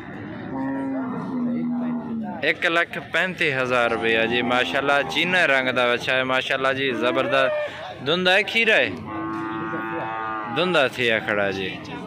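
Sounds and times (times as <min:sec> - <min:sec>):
cow mooing: 0:00.0 - 0:02.4, 0:03.8 - 0:05.5, 0:08.9 - 0:10.7.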